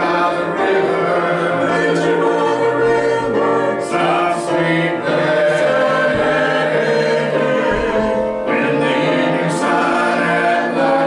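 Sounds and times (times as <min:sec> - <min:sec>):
mixed choir singing a hymn: 0:00.0 - 0:11.0.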